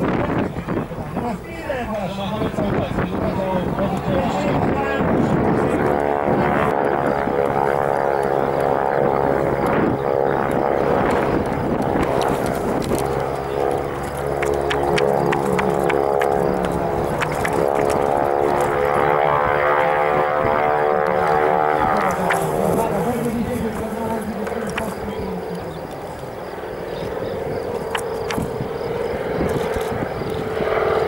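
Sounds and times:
propeller plane engine drone: 0.0s - 31.0s.

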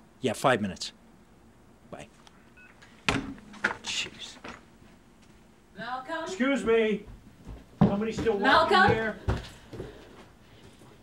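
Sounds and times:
mobile phone electronic beep: 2.6s - 2.8s.

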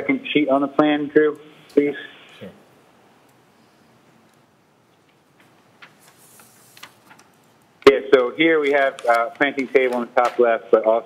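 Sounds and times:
man speaking: 0.0s - 2.7s, 7.8s - 11.0s.

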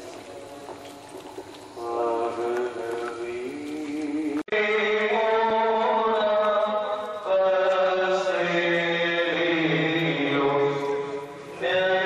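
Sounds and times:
slow devotional chanting: 0.0s - 12.0s.

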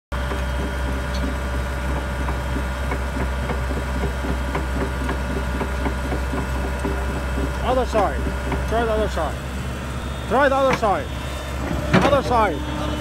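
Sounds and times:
excavator diesel engine idling: 0.1s - 13.0s.

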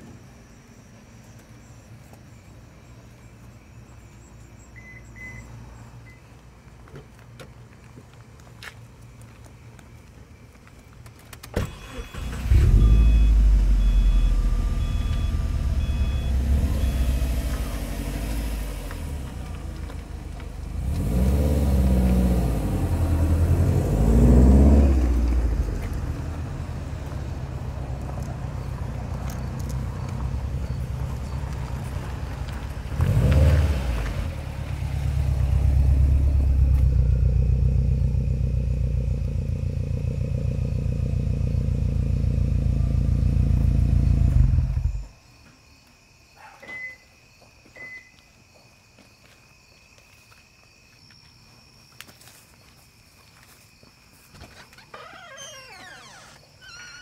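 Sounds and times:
car engine starting and revving: 11.6s - 45.1s.

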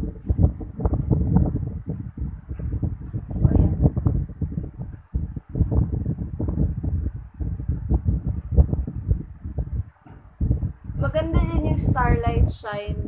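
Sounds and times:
fan air buffeting microphone: 0.0s - 13.0s.

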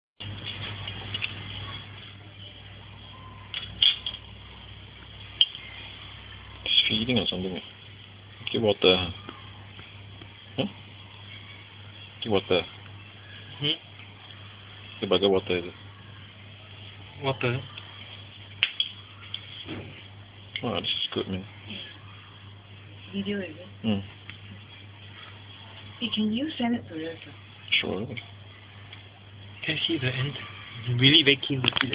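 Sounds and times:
steady low hum: 0.2s - 31.9s.

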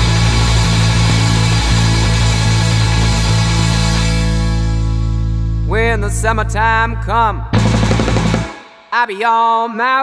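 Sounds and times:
distorted electric guitars: 0.0s - 5.9s, 7.5s - 9.0s.

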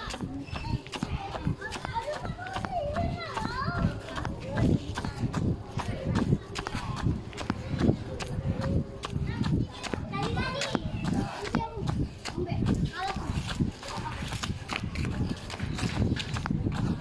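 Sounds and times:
low footstep thumps: 0.0s - 17.0s.

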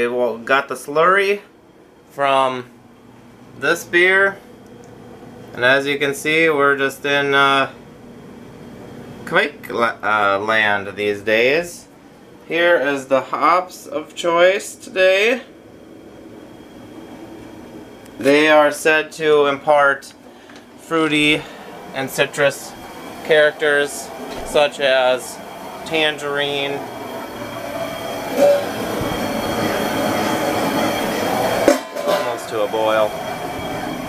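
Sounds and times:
faint high whine: 0.0s - 34.0s
kettle burner roaring: 1.1s - 34.0s
short pitched sound: 22.0s - 34.0s.

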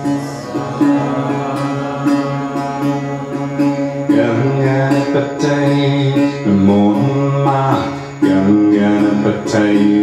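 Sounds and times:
struck melody notes: 0.0s - 7.7s
person chanting: 0.0s - 10.0s
steady drone: 0.0s - 10.0s.

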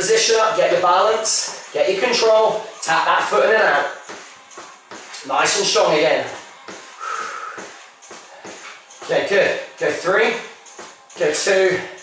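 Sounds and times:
shoe taps and scuffs on floor: 4.1s - 5.2s
man breathing hard: 6.7s - 8.8s.

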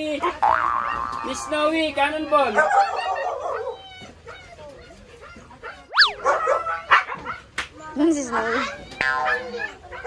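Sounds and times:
dogs whimpering and yelping: 2.5s - 4.6s, 5.3s - 7.5s
sharp high dog yelp: 2.5s - 4.6s, 5.2s - 7.5s, 9.2s - 10.0s
dog whining: 5.3s - 7.3s.

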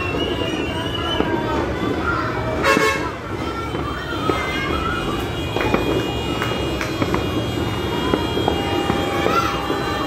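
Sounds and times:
horns tooting: 0.0s - 10.0s
people's voices: 0.0s - 10.0s.

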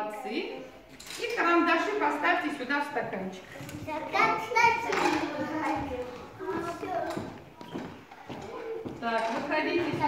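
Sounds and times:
children talking quietly: 3.3s - 10.0s.

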